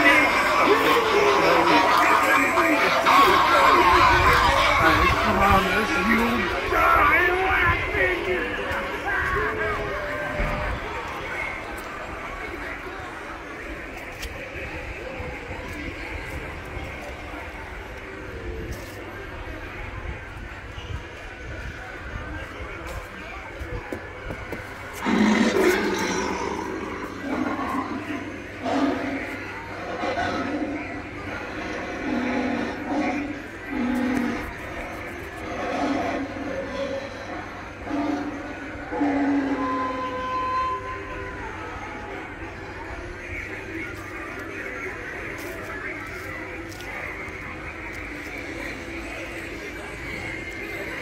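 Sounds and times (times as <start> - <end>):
steady background noise: 0.0 - 51.0.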